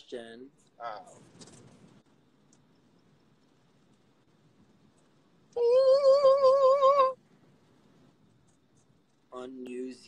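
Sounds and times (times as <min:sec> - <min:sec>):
person singing wavering ohh: 0:05.6 - 0:07.2.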